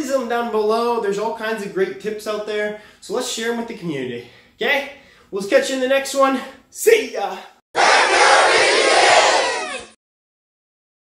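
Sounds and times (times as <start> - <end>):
group shouting and cheering: 7.8 - 10.0.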